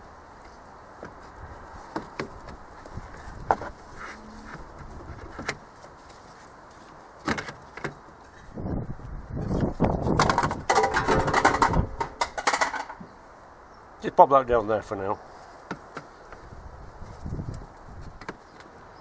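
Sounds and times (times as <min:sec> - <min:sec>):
plastic clattering and creaking: 0:04.4 - 0:05.7, 0:10.0 - 0:13.1
plastic pipe knocking and scraping: 0:10.0 - 0:13.1.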